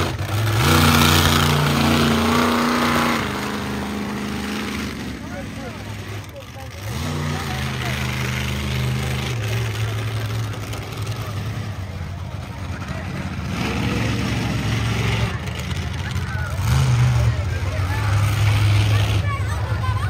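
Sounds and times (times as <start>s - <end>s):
monster truck engine revving: 0.0s - 20.0s.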